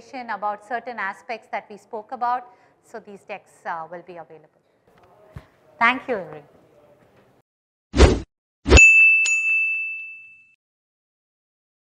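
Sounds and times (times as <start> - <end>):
high bell-like ding: 8.7 - 10.6.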